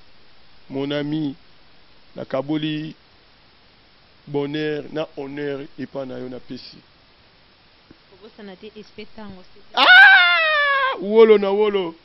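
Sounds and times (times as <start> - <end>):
person crying out: 9.8 - 11.1.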